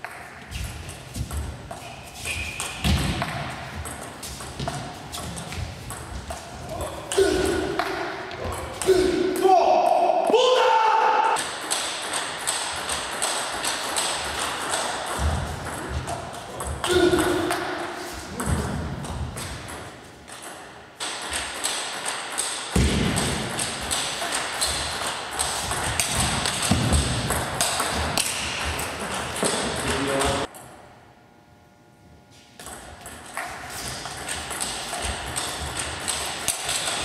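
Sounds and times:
footwork thuds on floor: 2.8s - 6.4s, 25.8s - 28.8s.

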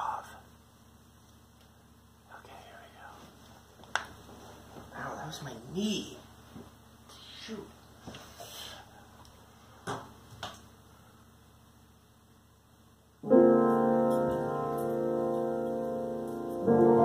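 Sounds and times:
piano chords ringing: 13.2s - 17.0s.

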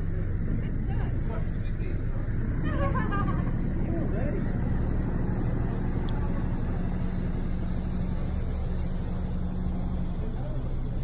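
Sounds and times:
constant hum: 0.0s - 11.0s
ship engine low rumble: 0.0s - 11.0s.

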